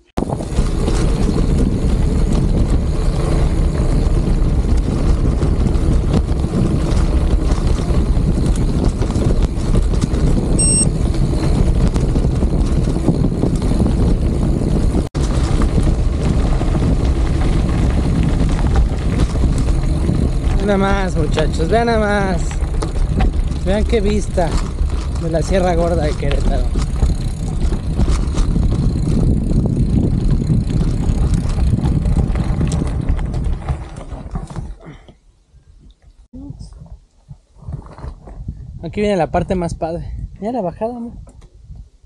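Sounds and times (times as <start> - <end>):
wind rushing over microphone: 0.0 - 34.9, 35.6 - 42.0
bicycle tyres on gravel: 0.2 - 35.0, 36.7 - 38.7
brief high chirp: 10.6 - 10.9.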